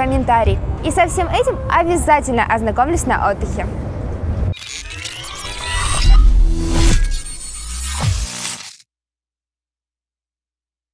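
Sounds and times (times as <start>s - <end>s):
street background noise: 0.0s - 6.6s.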